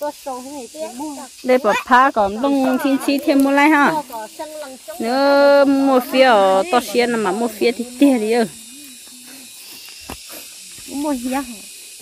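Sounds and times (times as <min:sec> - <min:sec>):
woman speaking: 0:01.4 - 0:04.2, 0:05.0 - 0:08.6, 0:10.9 - 0:11.7.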